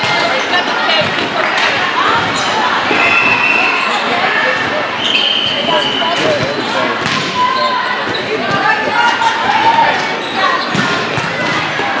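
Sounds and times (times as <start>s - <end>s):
volleyballs being hit and bounced: 0.0s - 3.4s, 5.6s - 12.0s
voices talking and calling out: 0.0s - 12.0s.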